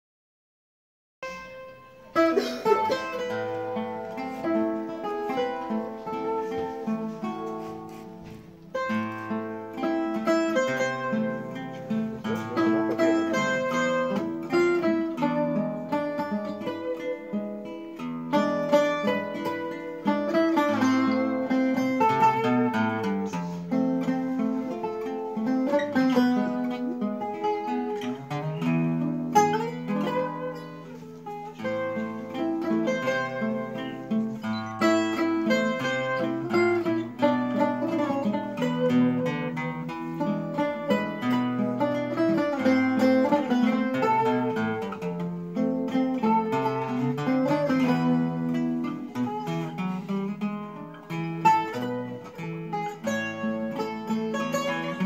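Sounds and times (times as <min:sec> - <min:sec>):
classical guitar accompaniment: 0:01.2 - 0:55.0
guitar picking melody: 0:01.2 - 0:55.0.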